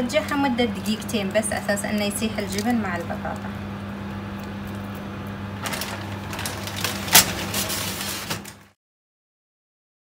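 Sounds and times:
steady low hum: 0.0 - 8.7
metal tray scraping on oven rack: 5.6 - 8.6.

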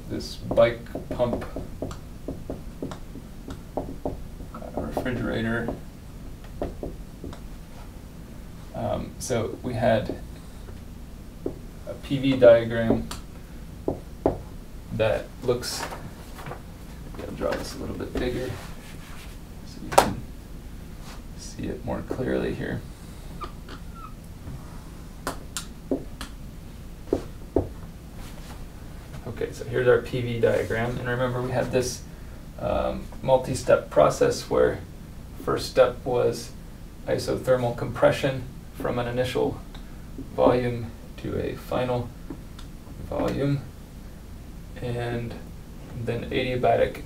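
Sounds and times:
low room hum: 0.0 - 47.0.

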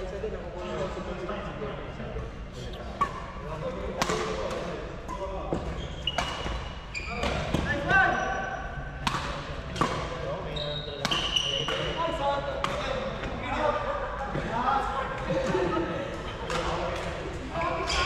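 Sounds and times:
racket hitting shuttlecock: 4.0 - 4.7, 9.0 - 10.1
sneaker squeaks on court floor: 5.5 - 8.3, 10.5 - 12.0.

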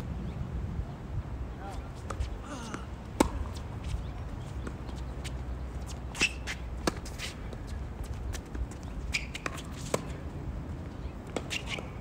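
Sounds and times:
shoes scuffing on court: 1.9 - 10.2
racquets striking tennis ball: 2.0 - 3.6.

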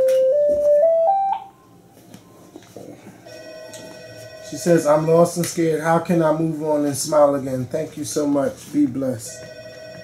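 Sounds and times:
telephone ringtone beeping: 3.2 - 5.1, 9.3 - 10.0.

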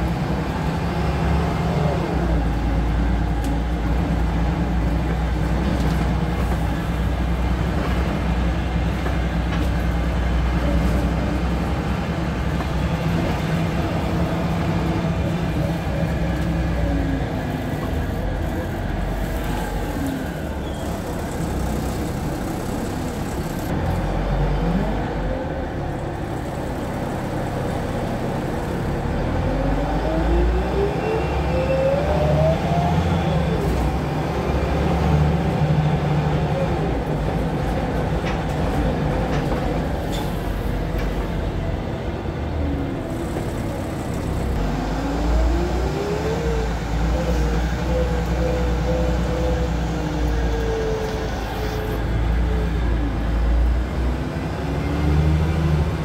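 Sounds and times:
bus engine and road rumble: 0.0 - 56.0
rising engine whine: 13.0 - 37.6, 41.5 - 56.0.

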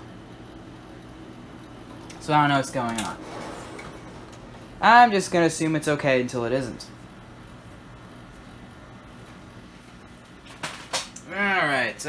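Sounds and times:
computer cooling fans humming: 0.0 - 12.0.

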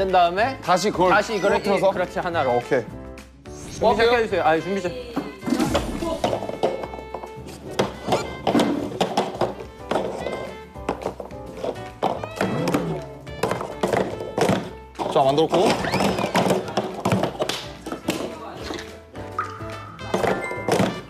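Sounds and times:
background music: 0.0 - 21.0
plastic cups clacking: 5.2 - 21.0.

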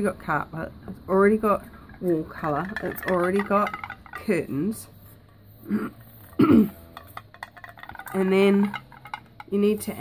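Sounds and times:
stick stirring paint in metal can: 1.4 - 10.0
person clearing throat: 5.7 - 6.9.

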